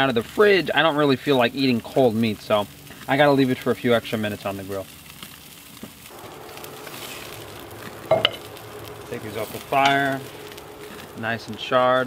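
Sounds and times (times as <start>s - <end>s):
meat sizzling on a grill: 0.0s - 12.0s.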